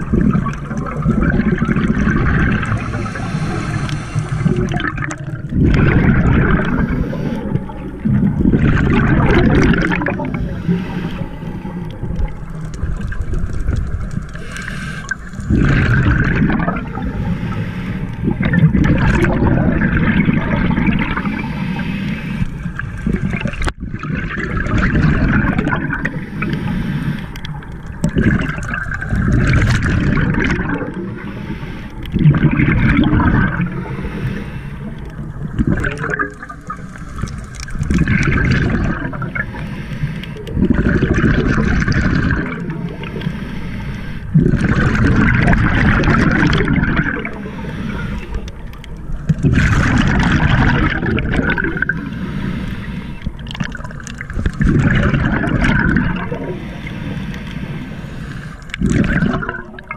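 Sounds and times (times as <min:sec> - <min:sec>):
exhaled bubbles gurgling: 0:00.0 - 0:59.9
scuba regulator breathing underwater: 0:00.0 - 0:59.9.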